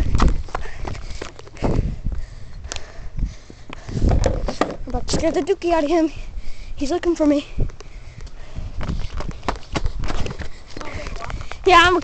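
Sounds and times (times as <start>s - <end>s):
hurried footsteps: 7.6s - 12.0s.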